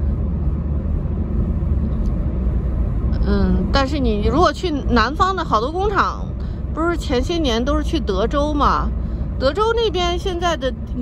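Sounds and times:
car driving on highway: 0.0 - 11.0.

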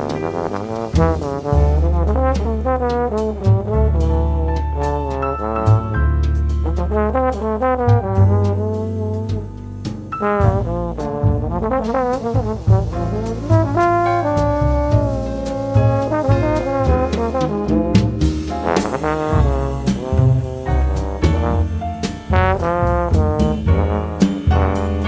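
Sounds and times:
trombones playing melody: 0.0 - 9.5, 10.1 - 25.0
big band jazz: 0.0 - 25.0.

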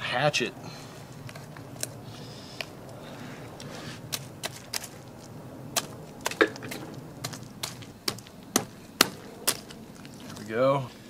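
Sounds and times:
knife crunching through fish scales: 3.6 - 10.5.

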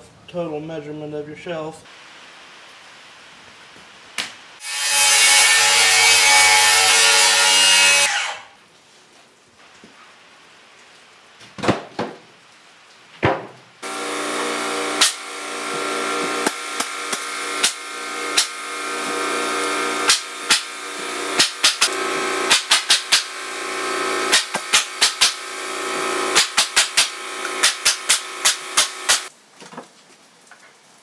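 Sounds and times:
pneumatic nail gun firing: 13.8 - 29.3
steady machine hum: 13.8 - 29.3.

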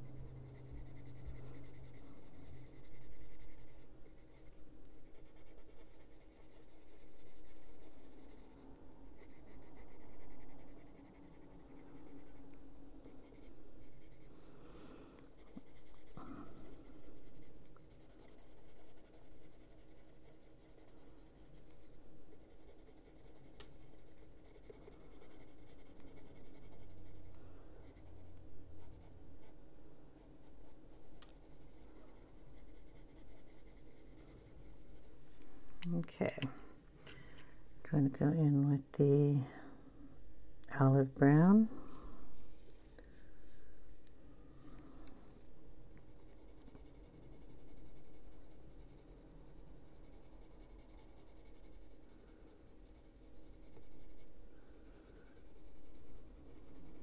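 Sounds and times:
colored pencil scratching on paper: 0.0 - 35.3, 45.9 - 57.0.

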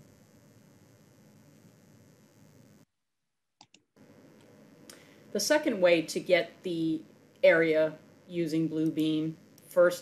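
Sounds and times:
computer mouse clicks: 3.6 - 3.8
faint room hiss: 4.0 - 10.0.

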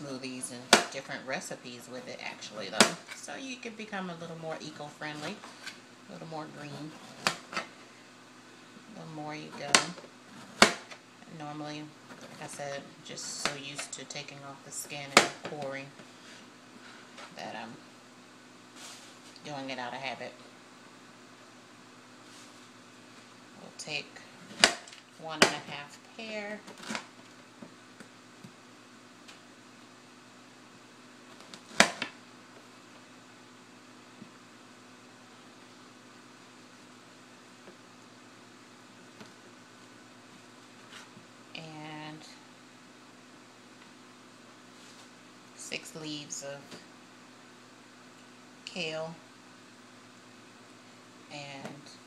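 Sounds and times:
person speaking: 0.0 - 5.5, 6.1 - 7.3, 8.8 - 10.0, 11.2 - 16.0, 17.2 - 17.8, 19.4 - 20.4, 51.3 - 52.0
kitchen room noise: 0.0 - 52.0
steady low hum: 0.0 - 52.0.

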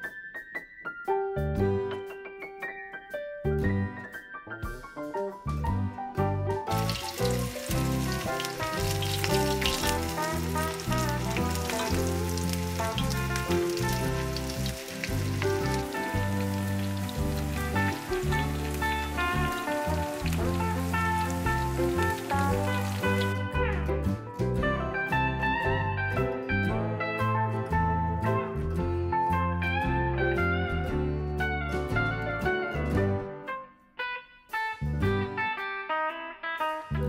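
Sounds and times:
background music with bass: 1.2 - 2.2, 3.4 - 33.6, 34.5 - 37.0
food frying in hot oil: 6.7 - 23.4.

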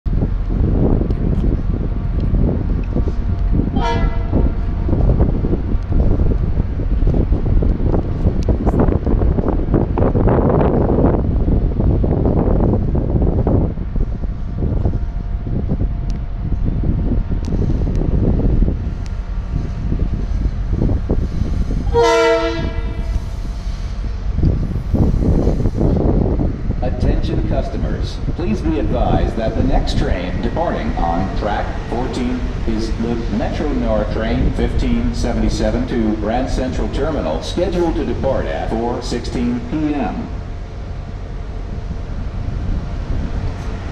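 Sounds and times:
train wheels rumbling and clicking: 0.0 - 43.9
train horn: 3.8 - 4.5, 21.8 - 23.2.

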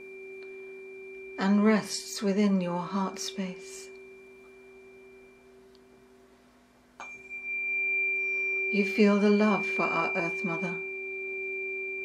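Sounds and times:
low steady hum: 0.0 - 12.0
tuning fork ringing: 0.0 - 12.0.

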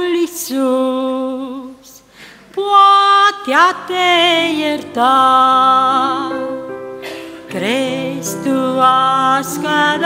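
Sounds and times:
woman singing a hymn: 0.0 - 10.0.

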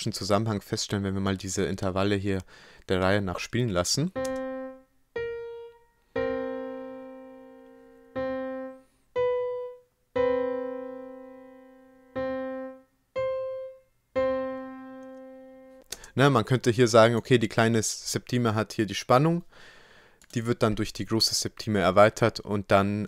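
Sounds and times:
keyboard notes: 4.1 - 15.8.

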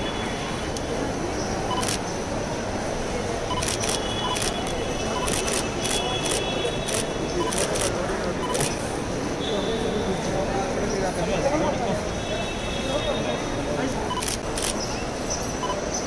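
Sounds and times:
camera shutters clicking: 1.7 - 2.0, 3.5 - 8.8, 14.2 - 14.9
people talking: 2.7 - 14.7
short high beeps: 8.4 - 8.7.

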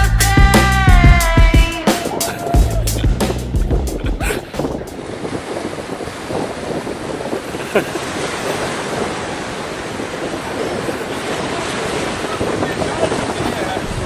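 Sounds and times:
surf breaking on beach: 0.6 - 14.0
wind buffeting microphone: 1.3 - 14.0.

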